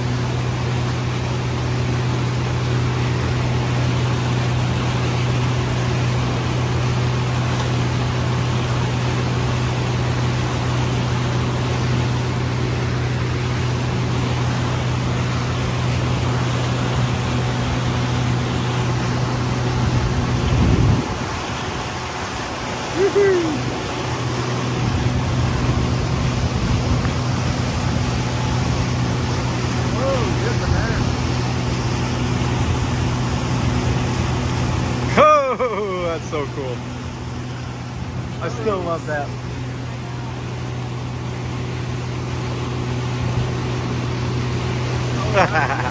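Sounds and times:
outboard motor running: 0:00.0 - 0:45.9
rushing wake water: 0:00.0 - 0:45.9
wind: 0:00.0 - 0:45.9.

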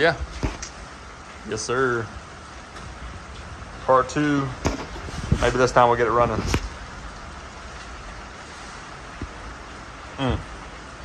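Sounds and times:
pouring rain: 0:00.0 - 0:11.0.

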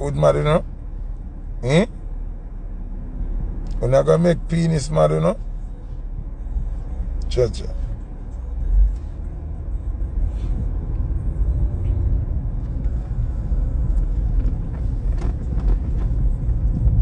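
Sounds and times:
car cabin road and engine rumble: 0:00.0 - 0:17.0.

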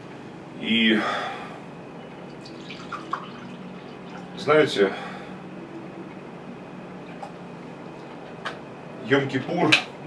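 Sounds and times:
juice pouring into a cup: 0:02.3 - 0:04.4
small liquid drips: 0:02.3 - 0:04.4.

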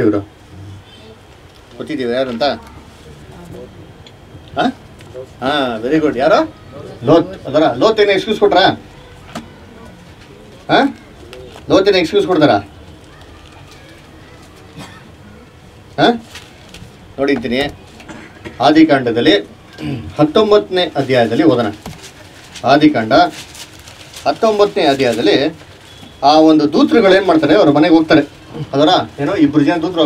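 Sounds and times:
man speaking: 0:04.6 - 0:08.8, 0:26.2 - 0:30.0.

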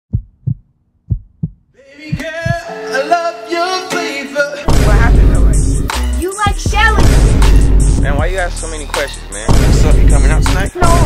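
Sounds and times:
muffled heartbeat thumps: 0:00.1 - 0:02.7
music: 0:01.8 - 0:11.0.

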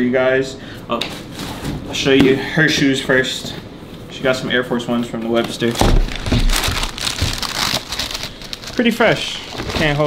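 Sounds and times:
tissue paper rustling: 0:06.0 - 0:10.0.

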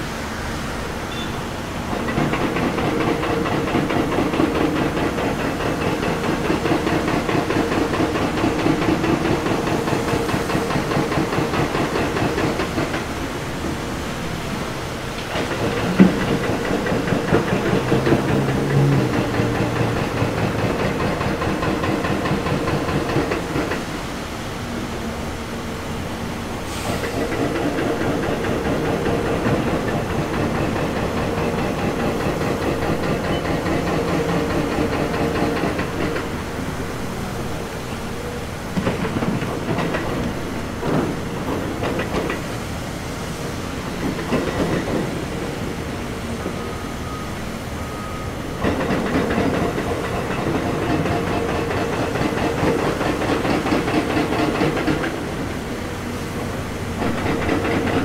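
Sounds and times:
diesel engines running: 0:00.0 - 0:39.6.

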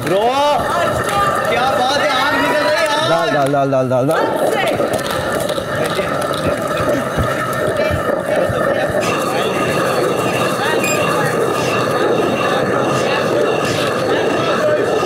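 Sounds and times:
stone mill grinding rumble: 0:04.0 - 0:15.0.

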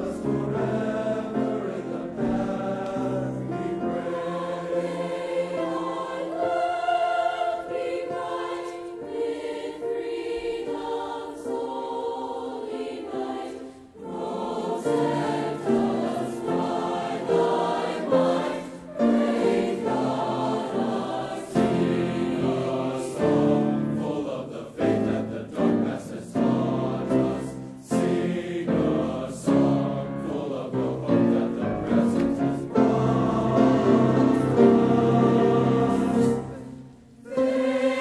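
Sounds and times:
choir singing in harmony: 0:00.0 - 0:38.0.

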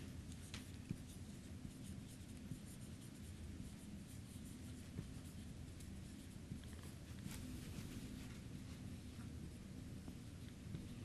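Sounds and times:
marker scratching on whiteboard: 0:00.2 - 0:07.2.

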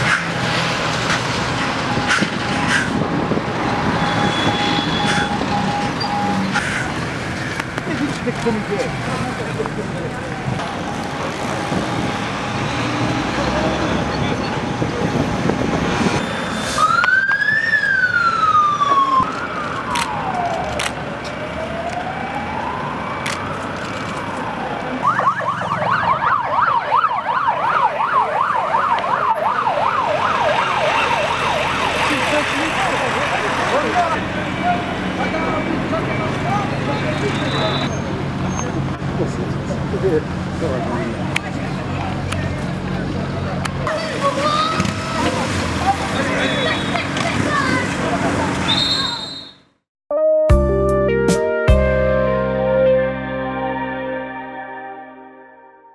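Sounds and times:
street traffic noise: 0:00.0 - 0:49.8
police siren: 0:01.3 - 0:06.6, 0:09.9 - 0:34.3.

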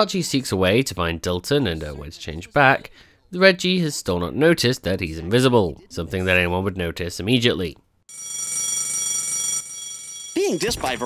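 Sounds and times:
electric bell ringing: 0:08.1 - 0:11.0.

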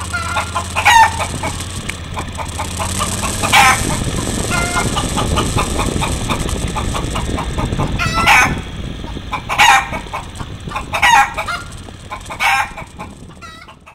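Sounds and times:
chicken squawks: 0:00.0 - 0:06.1, 0:06.8 - 0:08.6, 0:09.3 - 0:13.9
chicken clucking: 0:00.0 - 0:13.9
low rumble: 0:00.0 - 0:13.9.

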